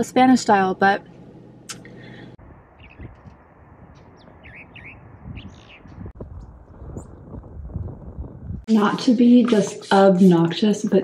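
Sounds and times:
small birds chirping: 2.7s - 7.2s.

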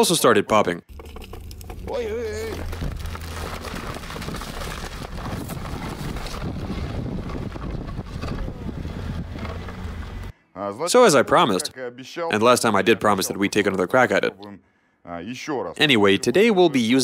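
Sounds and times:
car engine under load: 0.9s - 10.3s
wheels spinning in snow: 0.9s - 10.3s
wind on microphone: 4.2s - 10.3s.

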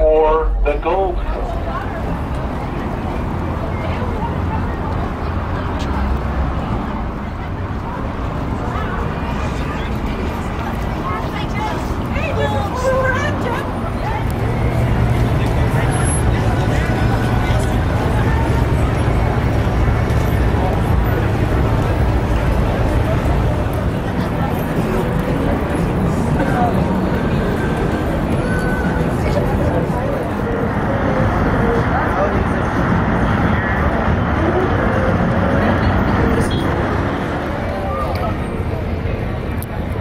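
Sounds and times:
crowd chattering: 0.0s - 40.0s
road traffic: 0.0s - 40.0s.

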